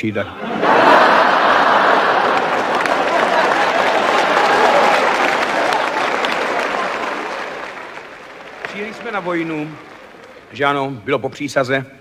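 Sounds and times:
audience applause: 0.5s - 10.9s.

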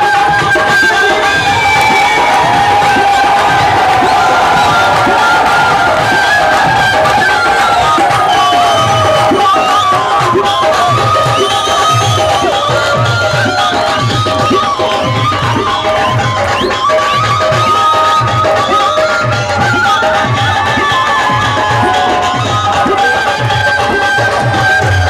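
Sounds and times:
crowd cheering and shouting: 0.0s - 25.0s
flute playing sliding melody: 0.1s - 25.0s.

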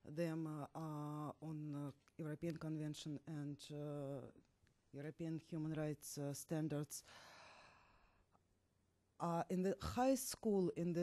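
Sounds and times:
soft breath into microphone: 7.0s - 8.4s.

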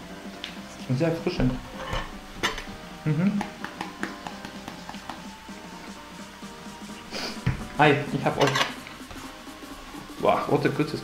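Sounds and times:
background music: 0.0s - 11.0s
spice shaker clicks and taps: 3.4s - 5.4s.

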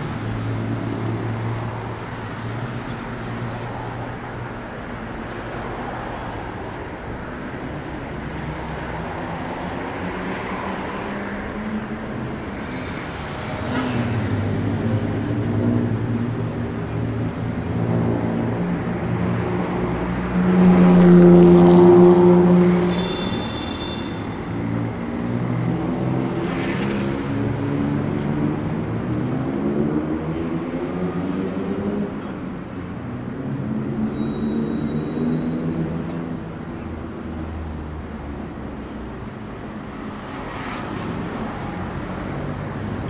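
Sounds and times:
cars and motorbikes passing: 0.0s - 43.0s.

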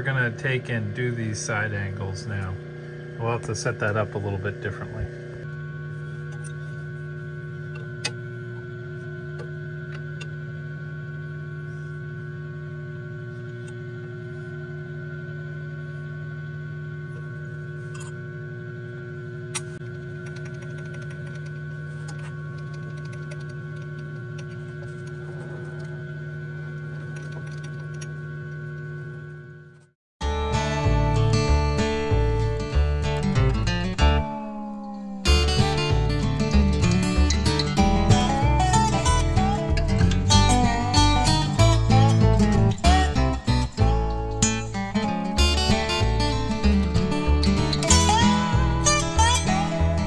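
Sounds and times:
surface grinder running: 19.6s - 29.2s.

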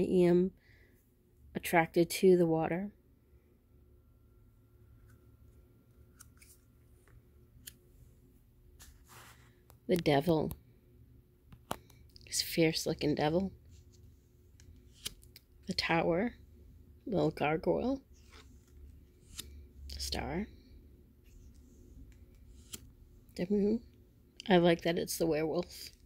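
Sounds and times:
low room hum: 0.0s - 26.0s
cards rubbing: 13.7s - 15.4s, 18.1s - 19.7s, 21.2s - 23.0s
cards clicking and snapping: 14.6s - 15.5s, 19.2s - 19.6s, 22.1s - 22.9s
card snapping: 14.9s - 15.4s.

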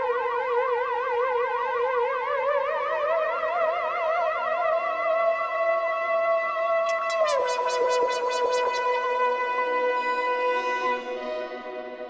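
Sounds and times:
low held synth note rising: 6.9s - 12.0s
synthesizer tones with vibrato: 6.9s - 12.0s.

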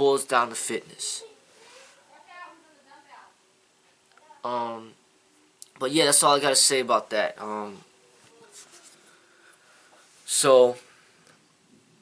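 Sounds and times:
soft rustle: 1.4s - 2.6s, 8.0s - 11.9s.

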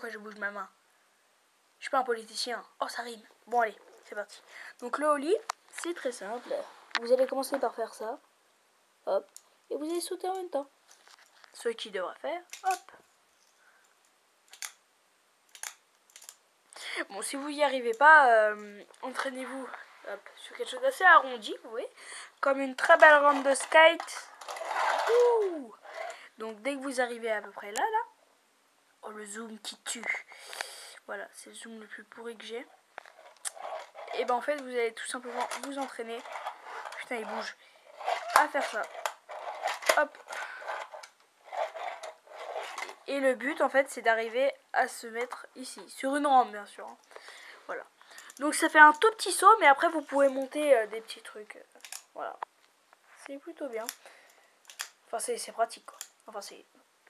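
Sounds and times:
small wheels rolling on ramp: 22.8s - 26.1s, 33.0s - 43.1s.

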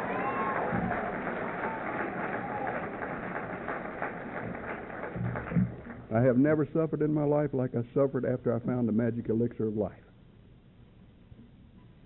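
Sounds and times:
audience clapping: 0.0s - 6.2s.

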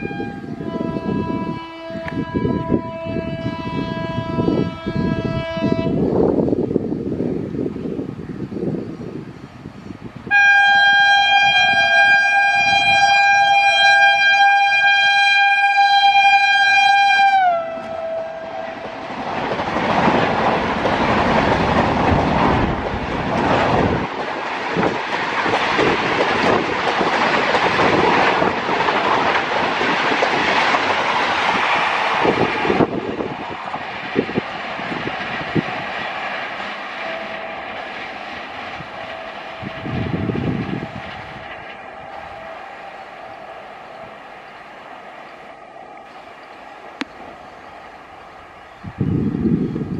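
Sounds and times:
locomotive horn blast: 0.0s - 6.1s, 10.3s - 19.1s, 37.0s - 37.9s, 38.8s - 44.2s
train wheels clattering: 17.7s - 48.0s.

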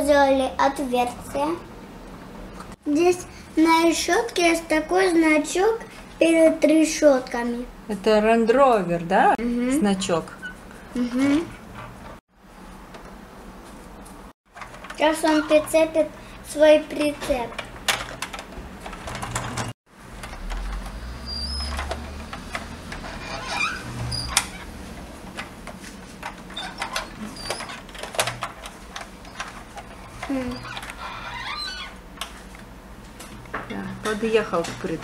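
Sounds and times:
toy wheels rolling on wood: 18.3s - 24.7s.

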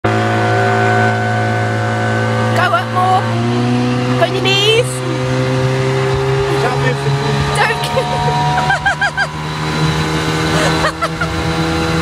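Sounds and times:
outboard motor running: 0.0s - 12.0s.

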